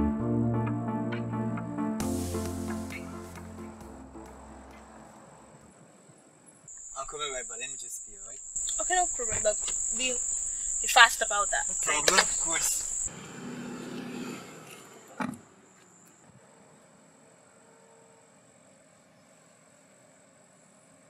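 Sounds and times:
high-pitched insect chirr: 6.7s - 13.1s.

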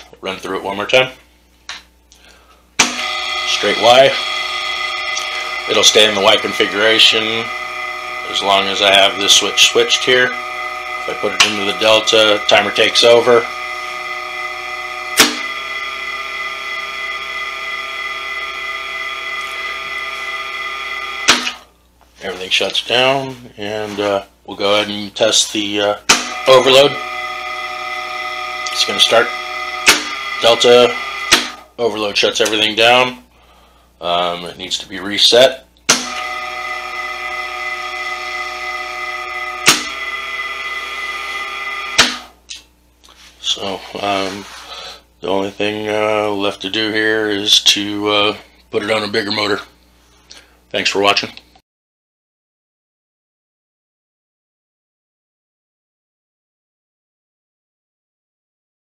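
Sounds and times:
electric motor hum and whine: 0.0s - 51.6s.

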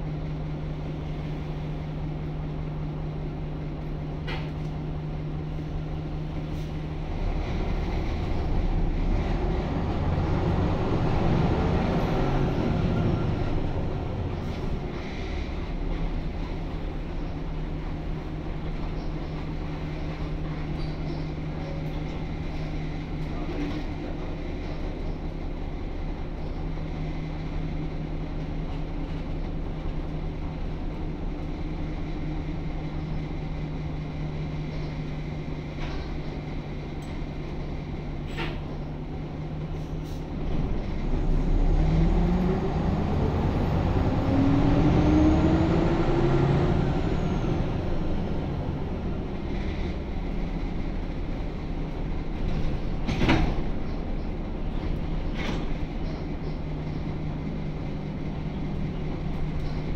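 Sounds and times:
bus diesel engine from inside: 0.0s - 59.9s.

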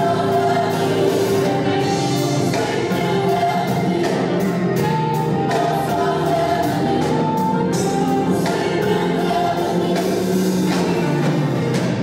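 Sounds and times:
choir singing gospel: 0.0s - 12.0s
drum kit and cymbals: 0.0s - 12.0s
live band playing: 0.0s - 12.0s.

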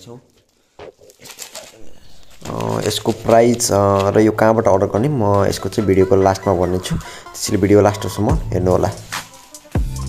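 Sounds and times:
plastic crackling: 0.0s - 10.0s
man's voice: 1.7s - 9.3s.

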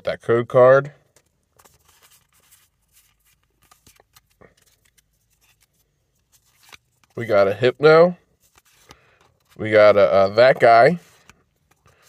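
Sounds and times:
trading cards clicking and rustling: 1.1s - 7.4s, 8.4s - 9.8s.

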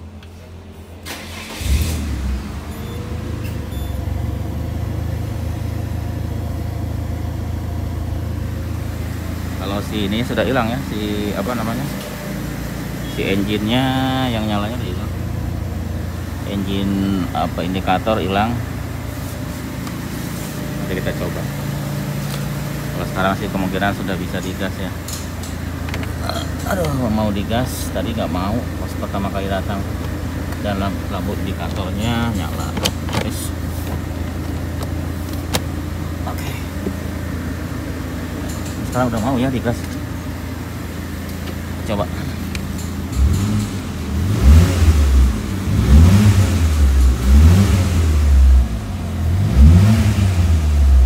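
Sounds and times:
car engine idling: 0.0s - 51.0s
car starter cranking: 1.0s - 2.4s.

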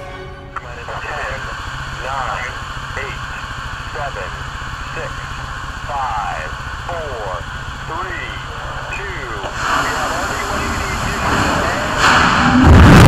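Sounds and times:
sustained musical chord: 0.0s - 0.7s
background hiss and hum: 0.0s - 13.0s.

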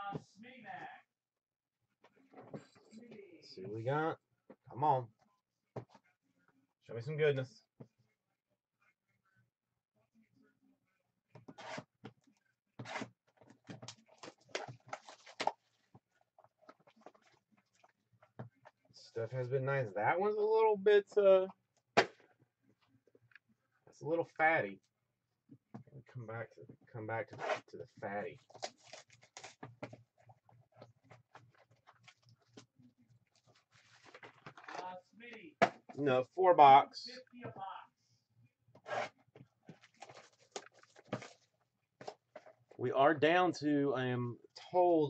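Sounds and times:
card packs being handled: 12.8s - 17.9s, 28.2s - 35.0s, 38.8s - 42.8s
shrink-wrap crinkling and tearing: 28.4s - 29.6s
cardboard box rustling: 33.4s - 34.8s
foil pack rustling: 33.4s - 34.8s.

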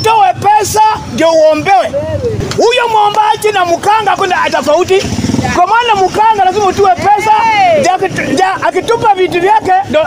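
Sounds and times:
man talking loudly: 0.0s - 10.0s
vehicle engine: 0.0s - 10.0s.

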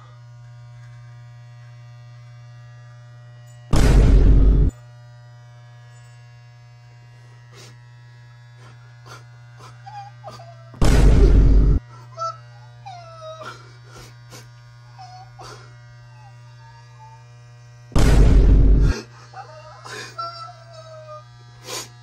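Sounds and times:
electric hair clippers humming: 0.0s - 22.0s.

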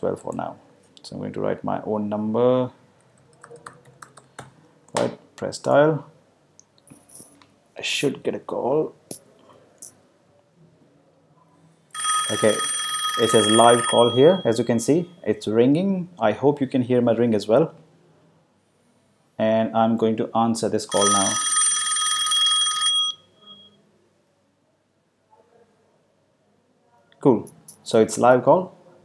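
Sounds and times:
phone ringing: 11.9s - 15.2s, 20.9s - 23.8s.

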